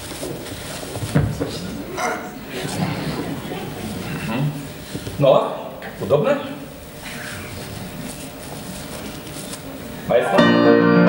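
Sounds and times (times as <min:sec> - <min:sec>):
faint rustling: 0:07.0 - 0:10.0.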